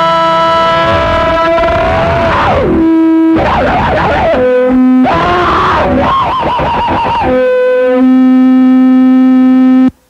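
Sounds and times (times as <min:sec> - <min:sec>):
sustained instrument note: 0:00.0 - 0:09.9.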